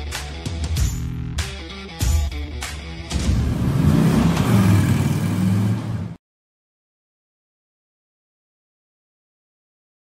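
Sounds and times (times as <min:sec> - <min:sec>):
motorcycle engine revving: 0:03.1 - 0:06.2.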